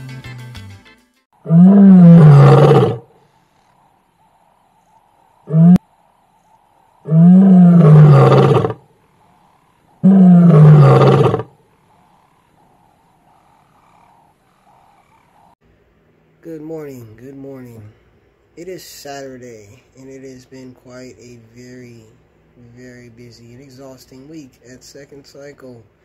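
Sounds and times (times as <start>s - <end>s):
lion roaring: 1.4s - 3.1s, 5.4s - 5.8s, 7.0s - 15.6s.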